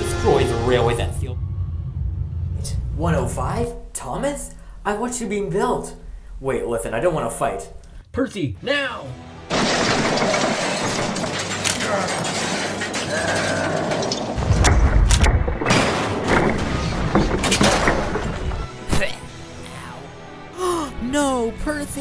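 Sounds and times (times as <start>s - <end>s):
music: 0.0s - 1.6s, 8.4s - 13.1s, 16.2s - 22.0s
heavy low boom: 0.0s - 4.0s
loud noisy crash: 9.5s - 19.0s
sharp cracks: 9.5s - 19.1s.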